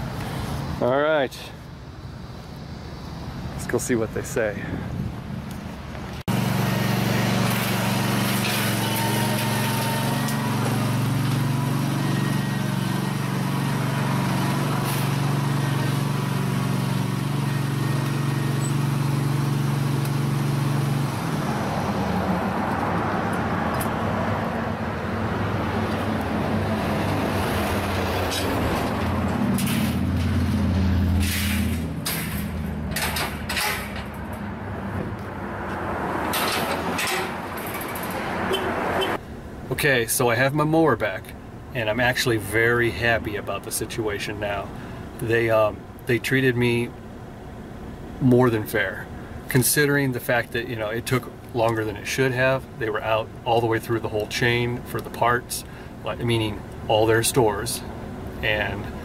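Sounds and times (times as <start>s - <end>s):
small engine running: 6.3s - 21.0s
sharp metallic clanks: 31.2s - 34.5s, 36.3s - 38.7s.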